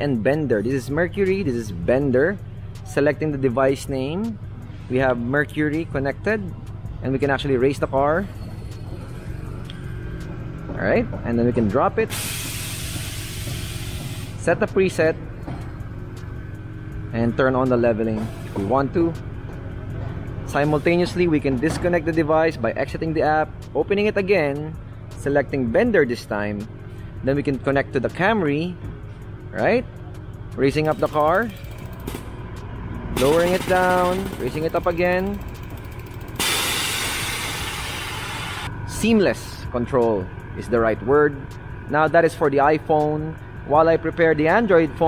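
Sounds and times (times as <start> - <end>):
air suspension pump hum: 7.8 - 22.9, 26.6 - 27.6, 30.3 - 39.0
air suspension hissing: 12.0 - 14.7, 18.1 - 18.8, 33.2 - 38.7.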